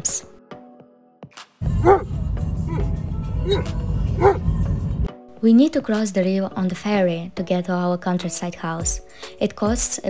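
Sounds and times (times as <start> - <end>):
dog barking: 1.8 - 2.1, 3.4 - 4.5.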